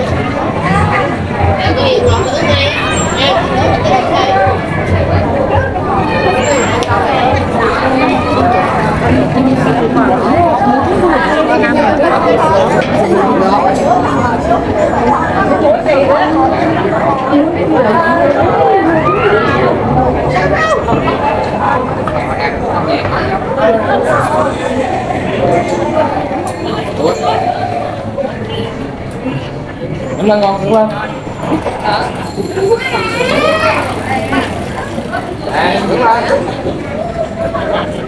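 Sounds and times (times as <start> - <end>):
crowd chatter: 0.0 - 38.0
people talking: 0.0 - 38.0
street background hum: 0.0 - 38.0.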